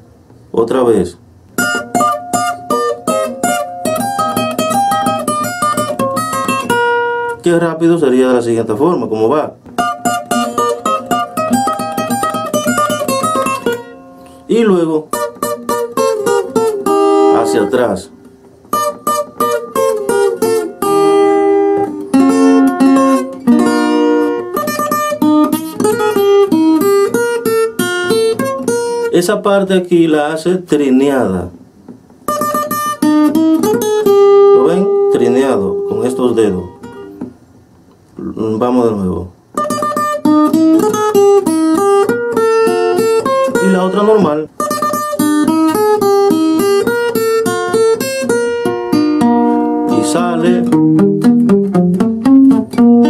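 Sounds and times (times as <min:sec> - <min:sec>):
guitar picking single notes: 0:01.4 - 0:53.0.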